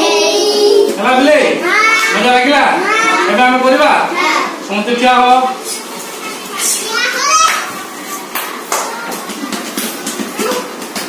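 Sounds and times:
children talking and calling out: 0.0s - 1.0s, 1.6s - 4.7s, 5.6s - 9.6s
high child's voice: 1.6s - 2.2s, 5.7s - 9.3s.

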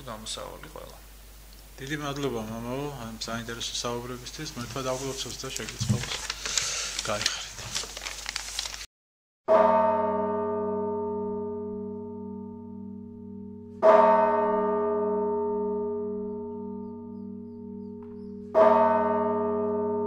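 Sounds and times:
large bell ringing: 9.5s - 20.0s.

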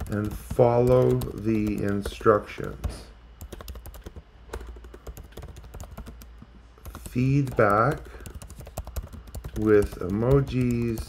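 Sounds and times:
keyboard typing clicks: 0.0s - 11.0s.

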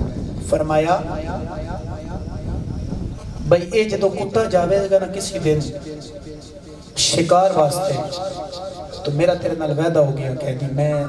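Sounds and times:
man chanting over loudspeaker: 0.0s - 2.6s, 3.4s - 11.0s
steady low rumble: 0.0s - 11.0s.

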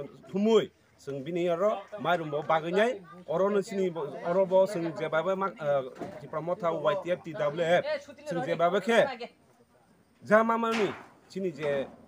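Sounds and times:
man speaking: 0.0s - 9.2s.

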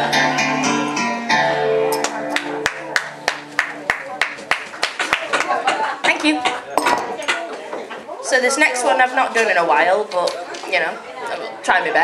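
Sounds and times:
karaoke backing track with guitar: 0.0s - 4.5s.

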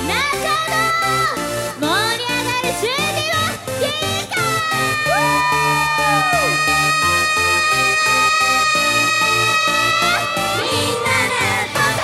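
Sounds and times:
pop song with pulsing beat: 0.0s - 12.0s
crowd cheering: 4.9s - 12.0s
long high sliding note: 5.2s - 12.0s.

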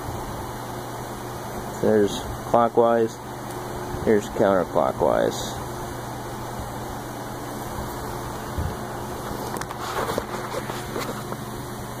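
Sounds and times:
low background hum: 0.0s - 12.0s
handling noises: 9.0s - 11.6s.

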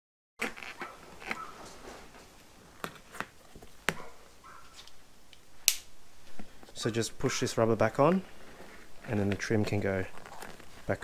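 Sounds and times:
handling of rubber and trim: 0.4s - 5.0s, 7.9s - 11.0s.

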